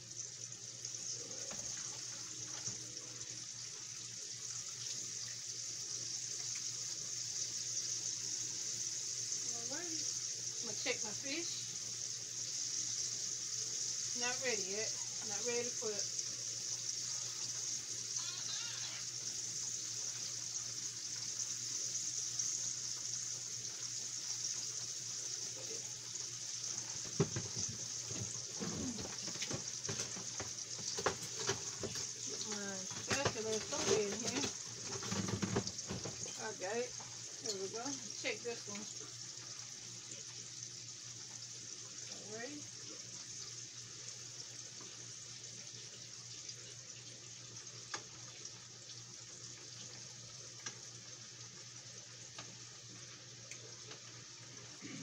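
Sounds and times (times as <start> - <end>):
food sizzling in hot oil: 0.0 - 55.0.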